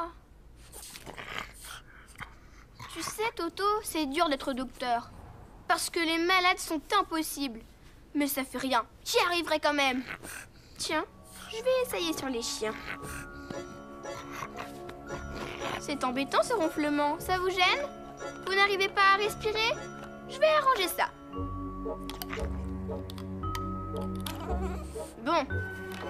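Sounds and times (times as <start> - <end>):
dog snoring: 0.7 - 3.2, 12.5 - 16.2
background music with held notes: 11.0 - 26.0.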